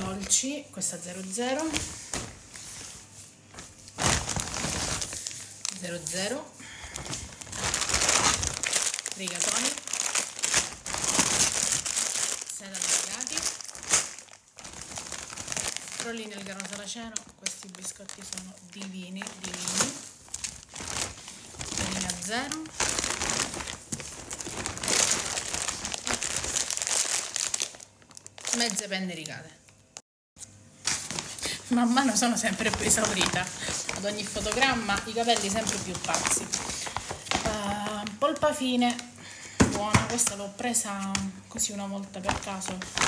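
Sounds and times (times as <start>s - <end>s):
plastic bag crinkling and rustling: 0.0s - 29.8s, 30.8s - 43.0s.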